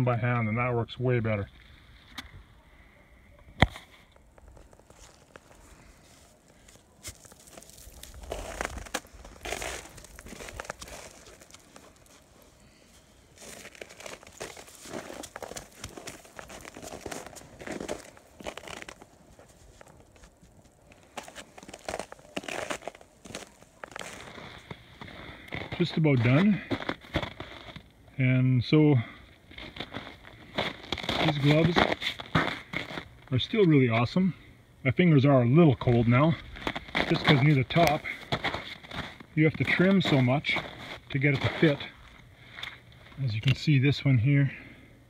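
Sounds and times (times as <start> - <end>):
crunching and crackling slush: 3.6 - 34.4, 35.0 - 44.6.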